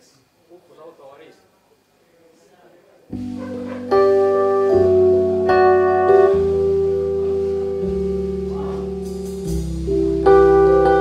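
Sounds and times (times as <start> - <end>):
keyboard chords: 3.1 - 11.0
electric bass notes: 3.2 - 11.0
electric guitar: 3.2 - 11.0.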